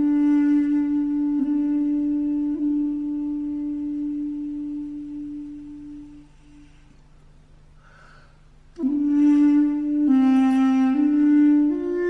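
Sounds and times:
solo melody instrument long note: 0.0s - 6.9s, 8.7s - 12.0s.

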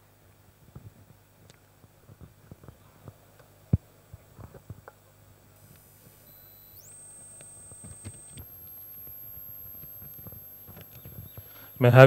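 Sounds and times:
low steady hum: 0.0s - 12.0s
high-pitched electronic tone: 5.6s - 12.0s
higher electronic tone: 5.6s - 12.0s.

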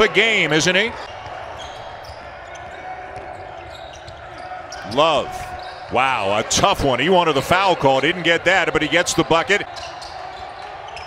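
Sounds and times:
near-empty arena background: 0.0s - 11.0s.

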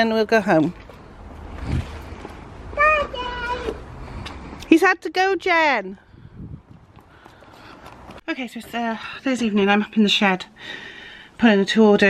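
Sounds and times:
wind rumble: 6.0s - 8.3s.

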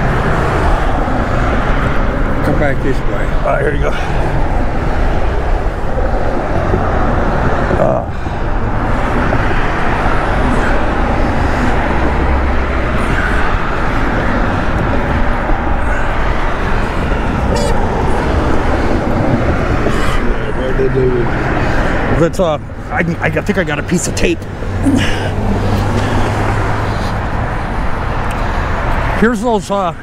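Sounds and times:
loud road traffic: 0.0s - 30.0s.

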